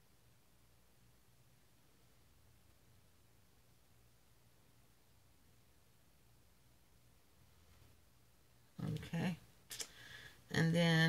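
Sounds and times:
faint low hum: 0:00.0 - 0:11.0
woman speaking: 0:08.8 - 0:09.5, 0:10.5 - 0:11.0.

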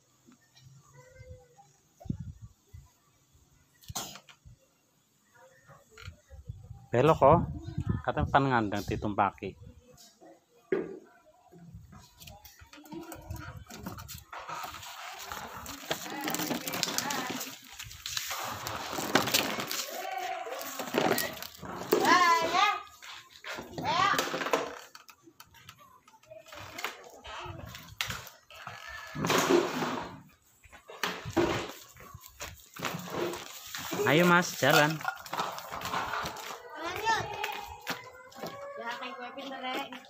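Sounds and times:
young child babbling and calling: 0:00.8 - 0:02.2, 0:36.7 - 0:40.0.

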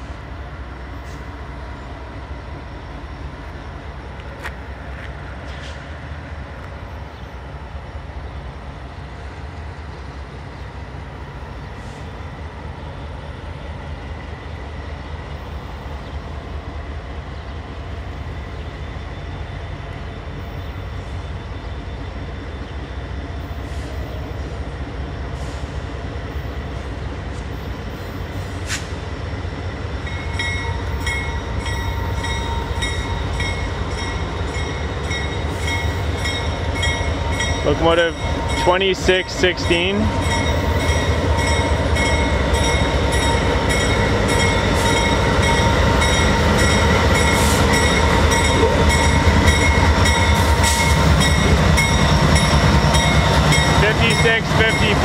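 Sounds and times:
diesel locomotives rumbling: 0:00.0 - 0:55.0
locomotive bell ringing: 0:30.1 - 0:55.0.

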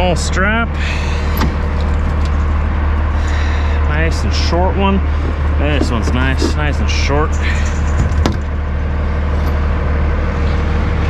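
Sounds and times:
diesel truck engine idling: 0:00.0 - 0:11.0.

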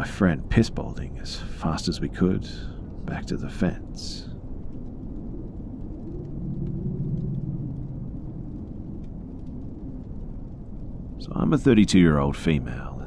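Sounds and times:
low steady rumble: 0:00.0 - 0:13.0
faint scattered ticks: 0:04.1 - 0:12.0.

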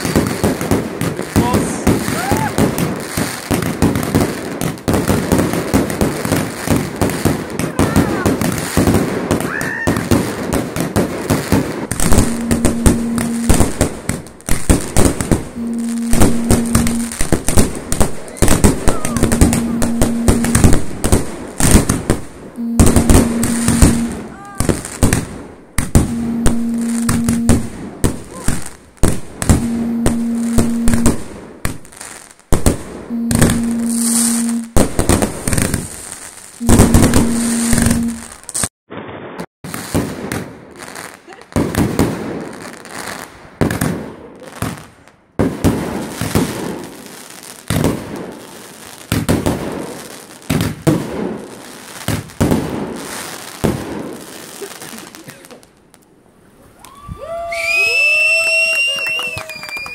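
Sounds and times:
fireworks bangs and crackling: 0:00.0 - 0:55.9
low steady tone: 0:12.2 - 0:14.0, 0:15.6 - 0:17.3, 0:19.0 - 0:21.0, 0:22.6 - 0:24.4, 0:26.0 - 0:27.8, 0:29.6 - 0:31.3, 0:33.1 - 0:34.8, 0:36.6 - 0:38.3.

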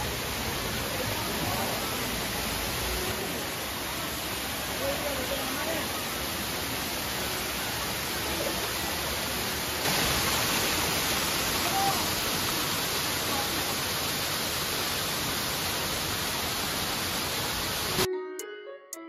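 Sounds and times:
waterfall rushing: 0:00.0 - 0:18.1
faint voices: 0:11.5 - 0:12.3.

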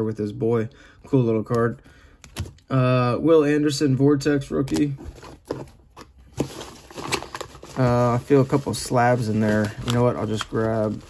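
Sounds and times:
plastic mailer bag crinkling: 0:04.8 - 0:11.0.

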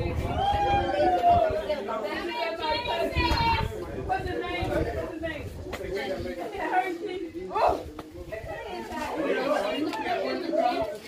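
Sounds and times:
indistinct chatter of voices: 0:00.0 - 0:11.0.

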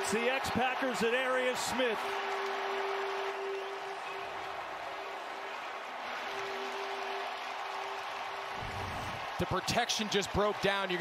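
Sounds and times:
stadium crowd cheering and applauding: 0:00.0 - 0:11.0.

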